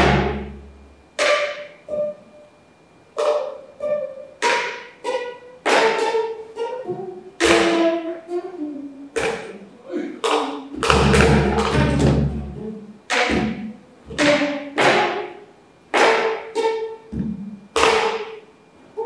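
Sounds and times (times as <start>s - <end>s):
plucked zither notes: 0.0s - 2.6s, 3.2s - 9.6s, 10.2s - 15.4s
stick clicking on instrument: 1.2s - 2.3s, 3.2s - 8.1s, 9.2s - 9.6s, 10.2s - 18.4s.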